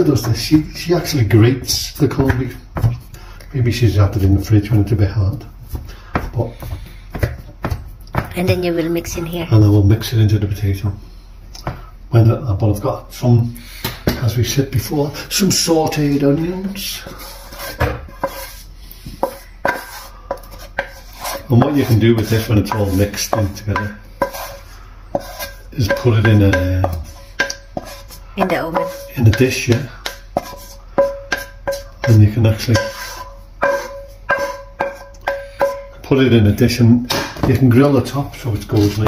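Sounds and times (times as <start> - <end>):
wooden spoon scraping a frying pan: 16.0 - 36.0, 37.6 - 39.0
spoon and pan knocking on pot: 19.2 - 36.1.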